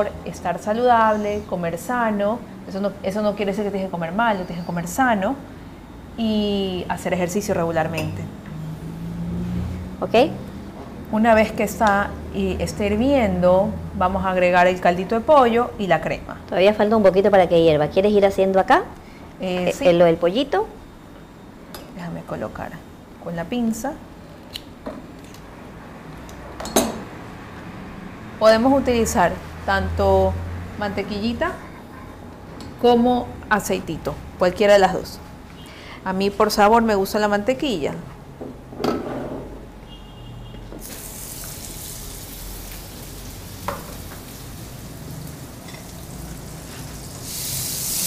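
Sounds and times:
butter sizzling in a skillet: 40.8 - 48.0.

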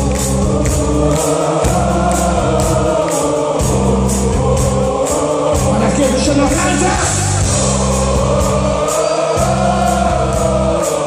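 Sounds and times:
choir-like singing: 0.0 - 11.0
metal band and orchestra playing: 0.4 - 11.0.

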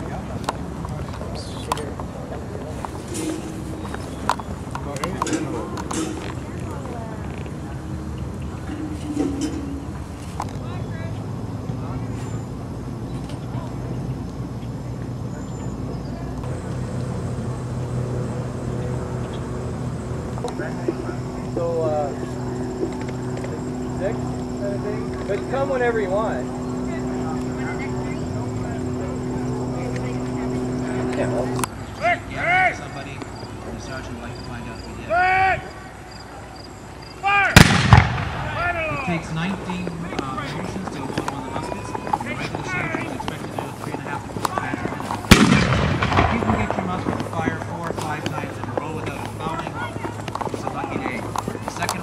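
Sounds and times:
people talking: 0.0 - 12.5, 13.1 - 36.6, 38.4 - 52.0
faint voices: 0.0 - 37.6, 38.4 - 52.0
steady low hum: 0.0 - 52.0
gun blast with rolling echo: 37.6 - 38.6, 45.3 - 47.2.

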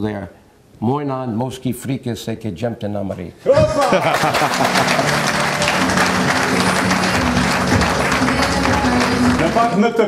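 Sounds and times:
audience applauding: 3.6 - 10.0.

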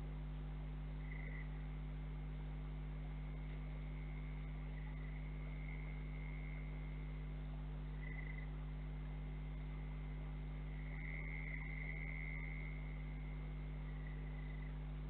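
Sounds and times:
low electrical hum: 0.0 - 15.0.

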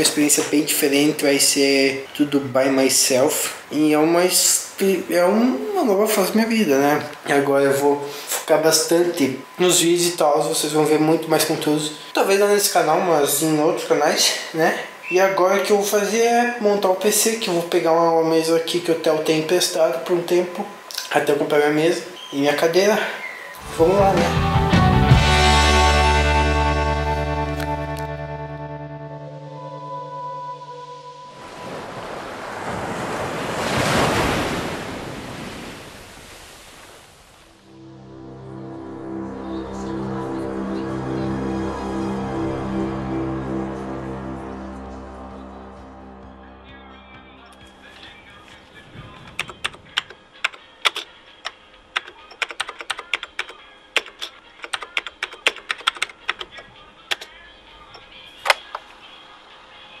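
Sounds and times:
keyboard keys clicking: 49.3 - 57.3.

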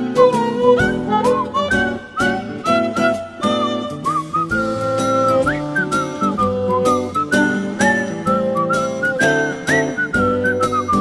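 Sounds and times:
plucked instrumental accompaniment: 0.0 - 11.0
whistled melody: 0.0 - 11.0.

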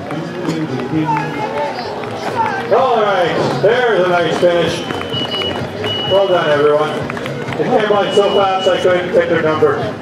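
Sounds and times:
voices talking and calling out: 0.0 - 10.0.

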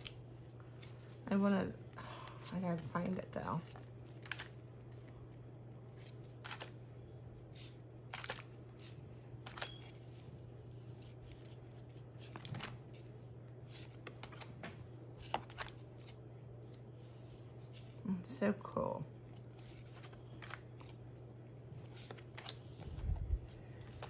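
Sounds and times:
low hum: 0.0 - 24.0.

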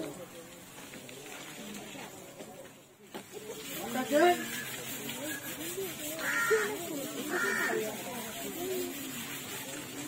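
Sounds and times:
hose spraying water: 0.0 - 10.0
elephant harsh calls: 4.3 - 8.3.

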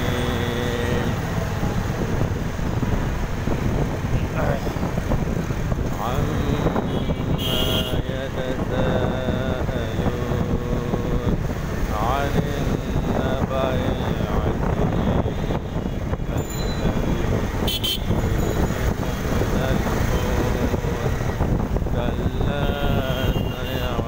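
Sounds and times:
person singing long held notes: 0.0 - 2.1, 5.9 - 17.6, 18.2 - 24.0
road and engine noise: 0.0 - 24.0
wind buffeting microphone: 0.0 - 24.0.

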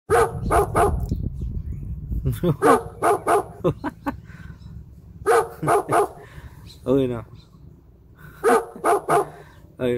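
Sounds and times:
dog barking: 0.1 - 1.0, 2.6 - 3.6, 5.2 - 6.2, 8.4 - 9.5.

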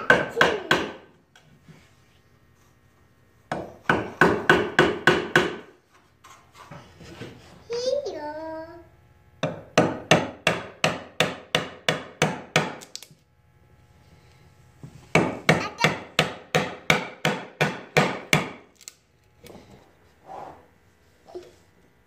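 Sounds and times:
mallet striking chisel into wood: 3.5 - 5.6, 9.4 - 12.9, 15.1 - 18.6.

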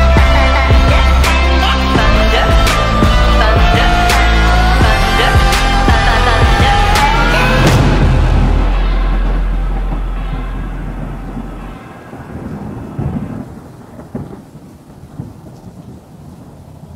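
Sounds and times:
thunder rumbling: 0.0 - 16.9
rain pattering: 7.1 - 16.9.

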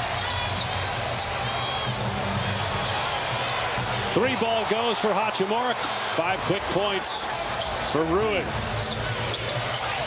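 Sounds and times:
sneaker squeaks: 0.0 - 2.3, 7.5 - 10.0
arena crowd noise: 0.0 - 10.0.

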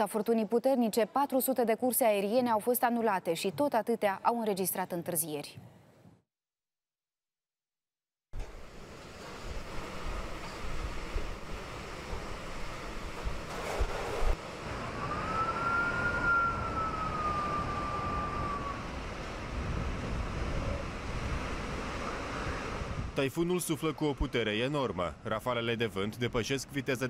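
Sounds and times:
wind gusts: 8.4 - 26.8
rising and sinking high tone: 14.6 - 19.4.

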